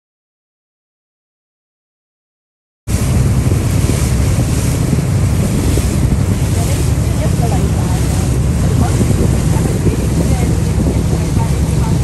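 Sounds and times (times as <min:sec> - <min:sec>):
boat motor running: 0:02.9 - 0:12.0
water rushing past hull: 0:02.9 - 0:12.0
wind buffeting microphone: 0:02.9 - 0:12.0.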